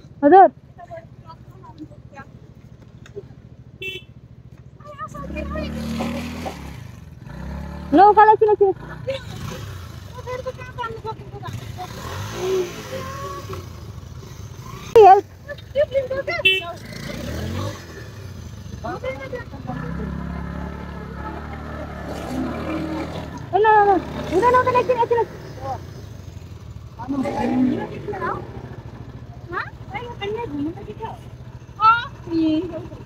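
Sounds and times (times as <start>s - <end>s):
motorcycle engine running: 0.0s - 33.0s
people talking: 4.8s - 6.3s, 7.9s - 13.6s, 18.8s - 25.8s, 27.0s - 28.6s, 29.5s - 31.2s, 31.8s - 33.0s.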